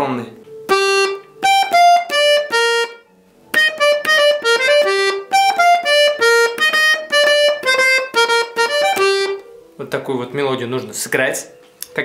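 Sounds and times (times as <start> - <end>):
button accordion melody: 0.6 - 9.6.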